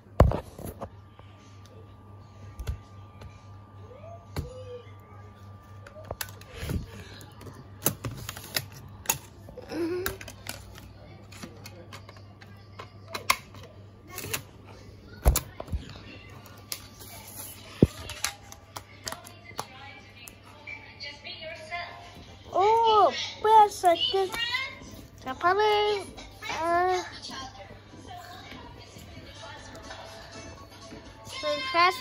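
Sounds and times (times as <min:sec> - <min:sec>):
steady low hum: 0:00.0 - 0:32.0.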